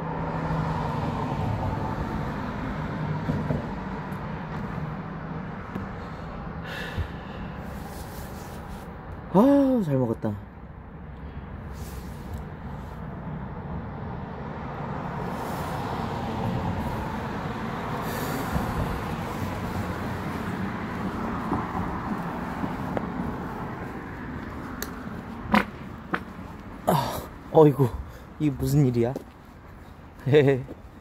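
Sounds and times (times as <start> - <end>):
car passing: 0.0 - 9.4, 10.6 - 31.0.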